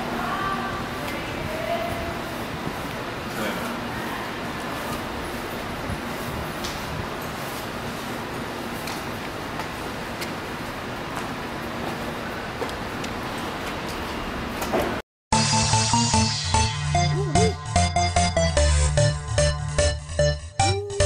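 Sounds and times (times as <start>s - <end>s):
garage room hiss and rumble: 0.0s - 15.0s.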